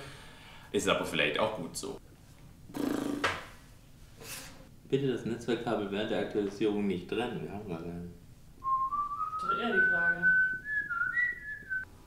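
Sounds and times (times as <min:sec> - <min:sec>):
person whistling a tune: 0:08.6 - 0:11.9.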